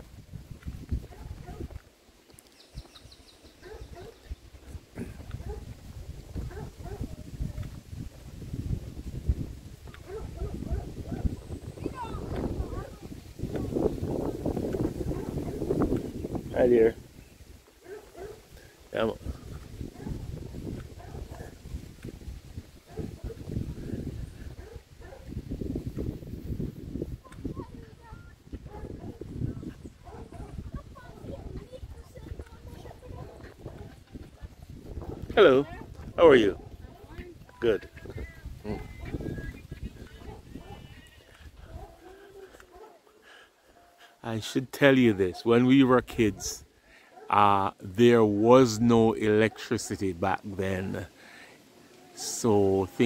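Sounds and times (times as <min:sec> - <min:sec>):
wind rumble on microphone: 0:00.0 - 0:01.9, 0:02.7 - 0:42.8
footsteps on paved road: 0:00.0 - 0:16.4, 0:17.2 - 0:18.9, 0:19.5 - 0:23.6, 0:24.5 - 0:44.1.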